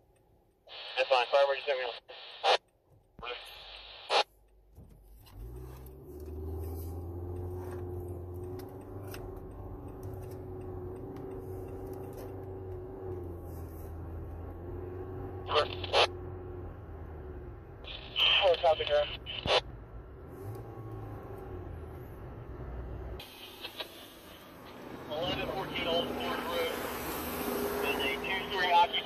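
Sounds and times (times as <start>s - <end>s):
road noise: 0.0s - 29.0s
two-way radio static: 0.7s - 2.6s, 3.2s - 4.3s, 15.5s - 16.2s, 17.9s - 19.6s, 23.2s - 24.4s, 25.1s - 26.8s, 27.8s - 29.0s
car engine: 2.7s - 29.0s.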